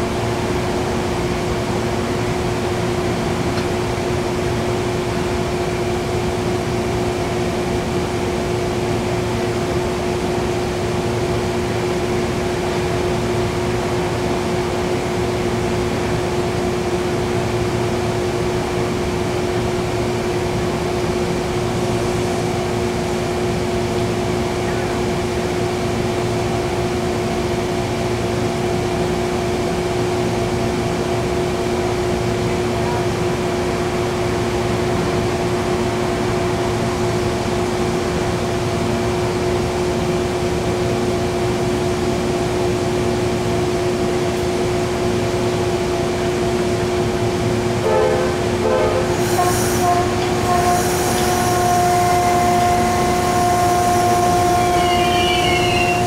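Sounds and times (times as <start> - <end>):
train humming: 0.0 - 56.0
train knocks: 47.6 - 56.0
high train squeal: 47.8 - 56.0.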